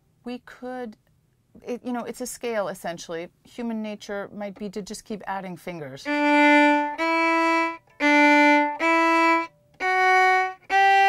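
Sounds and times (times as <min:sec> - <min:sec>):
violin bowed notes: 0:06.0 - 0:11.0.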